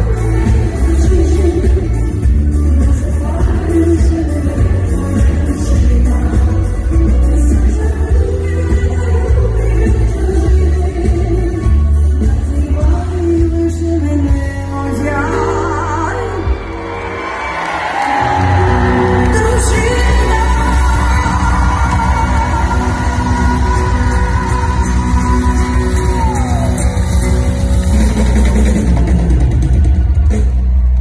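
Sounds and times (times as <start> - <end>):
live pop band with singing: 0.0 - 31.0
audience shouts: 16.3 - 20.1, 25.0 - 27.6.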